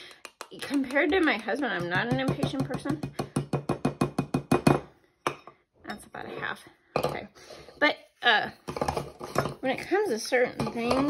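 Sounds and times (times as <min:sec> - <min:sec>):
rapid tapping on plastic bowl: 0:00.0 - 0:04.9, 0:10.4 - 0:11.0.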